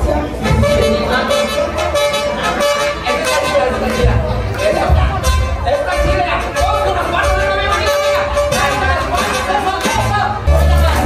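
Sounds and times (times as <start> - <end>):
horn-like note: 0.4 - 10.8.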